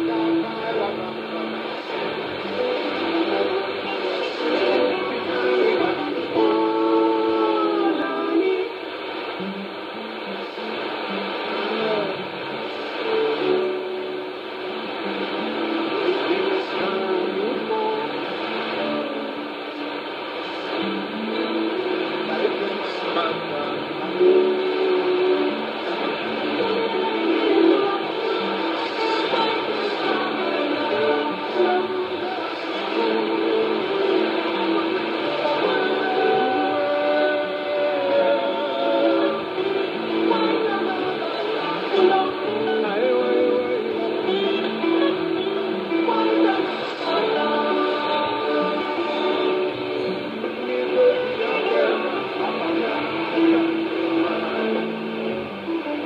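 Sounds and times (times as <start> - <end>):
radio music with singing: 0.0 - 56.0
steady radio hiss: 0.0 - 56.0.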